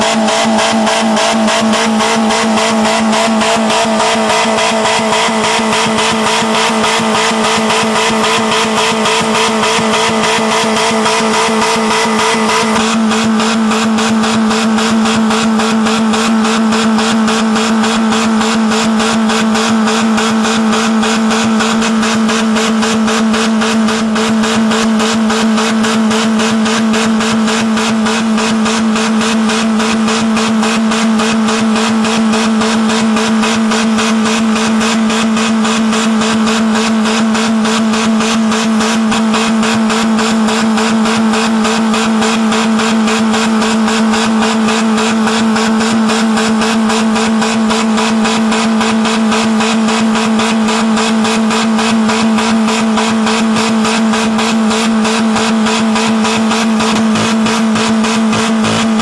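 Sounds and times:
car engine at full throttle: 0.0 - 59.0.

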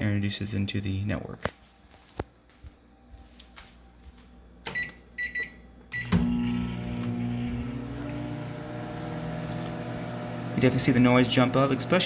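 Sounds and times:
microwave oven humming: 4.5 - 12.0
microwave keypad beeps: 4.7 - 6.5.

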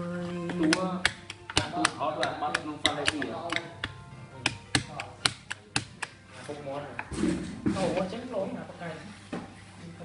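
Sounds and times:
faint music: 0.0 - 10.0
sharp taps: 0.7 - 6.2.

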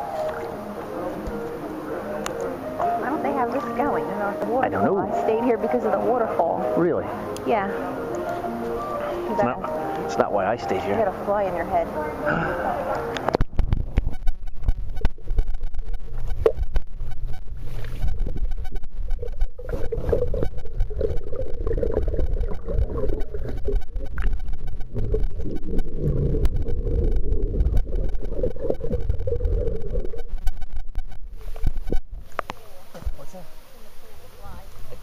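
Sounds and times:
muffled wavering hum: 0.0 - 35.0
underwater rumble of churning water: 13.2 - 35.0
bubbles popping: 19.0 - 30.4.

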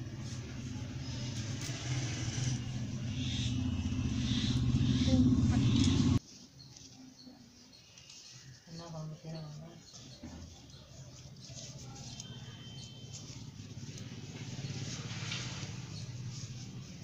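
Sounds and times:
low rumbling noise: 0.0 - 6.2.

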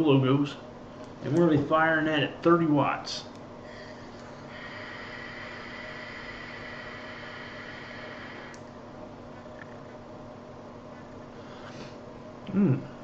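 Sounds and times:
soft exhale: 3.6 - 8.6
vape airflow hiss: 3.7 - 8.7.

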